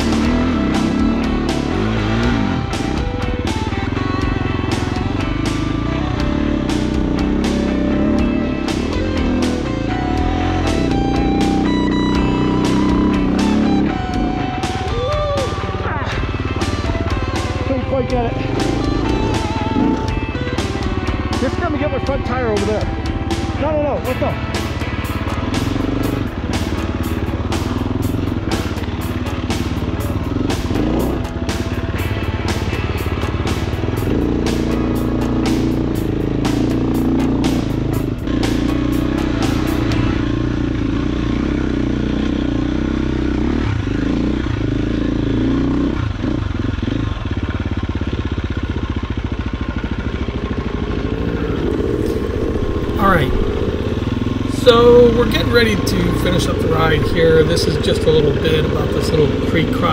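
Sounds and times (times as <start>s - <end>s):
dirt bike engine running: 0.0s - 59.9s.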